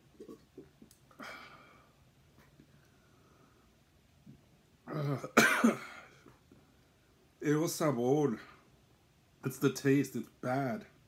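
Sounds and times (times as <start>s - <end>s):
man coughing: 4.9s - 6.2s.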